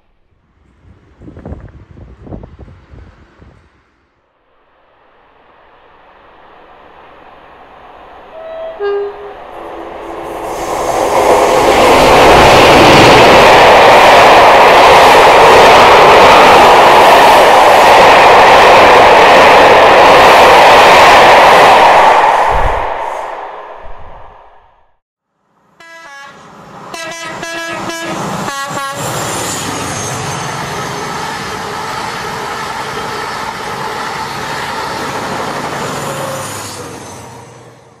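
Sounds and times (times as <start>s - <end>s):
diesel locomotive passing: 0.0s - 24.8s, 25.6s - 38.0s
quieter train running: 0.0s - 24.8s, 25.6s - 38.0s.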